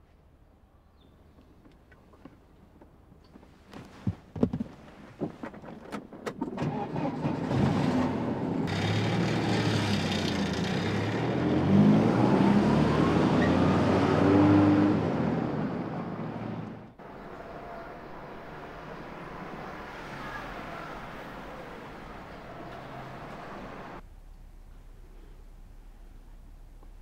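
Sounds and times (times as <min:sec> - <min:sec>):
car engine accelerating: 0:06.6 - 0:24.1
low steady hum: 0:23.7 - 0:27.0.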